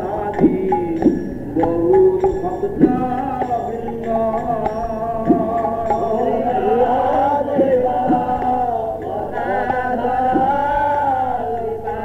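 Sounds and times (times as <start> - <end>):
man singing a chant: 0.0 - 12.0.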